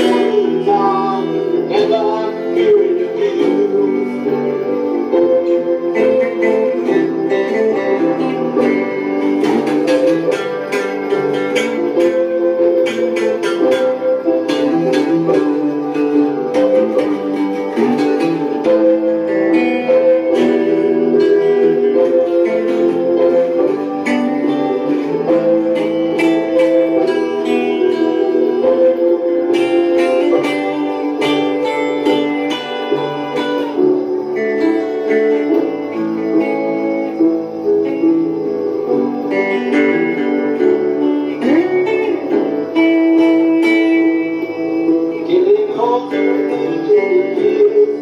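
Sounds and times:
lead guitar plucked notes: 0:00.0 - 0:48.0
piano chords: 0:00.0 - 0:48.0.

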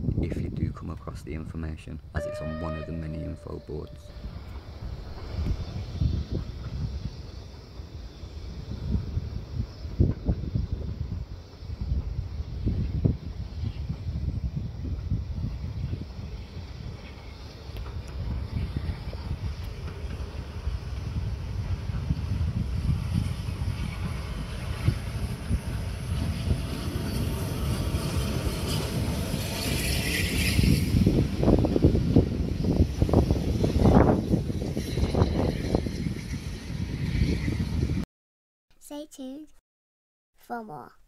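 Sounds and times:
wind buffeting on microphone: 0:00.0 - 0:02.1, 0:03.7 - 0:38.0
steam train rumble: 0:02.2 - 0:38.0.

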